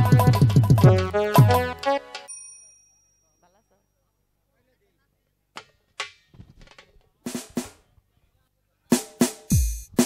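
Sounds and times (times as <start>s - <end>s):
live band music: 0.0s - 2.3s
sharp drum strikes: 0.0s - 2.3s, 7.3s - 7.8s, 9.0s - 10.0s
metallic ring: 2.3s - 4.1s.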